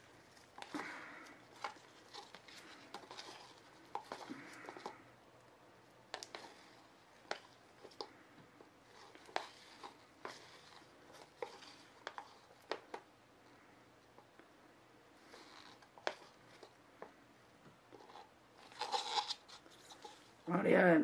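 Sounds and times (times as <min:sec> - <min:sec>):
stir stick scraping plastic cup: 0:00.0 - 0:05.0, 0:06.1 - 0:08.2, 0:08.8 - 0:13.0, 0:15.2 - 0:16.8, 0:17.9 - 0:20.5.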